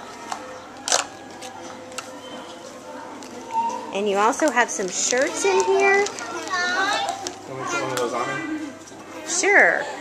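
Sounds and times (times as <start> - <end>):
children talking and calling out: 5.0 - 10.0.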